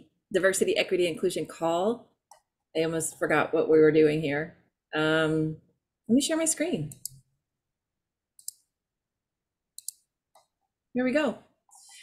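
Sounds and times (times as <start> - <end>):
computer mouse clicks: 6.9 - 7.2, 8.4 - 8.7, 9.8 - 10.5.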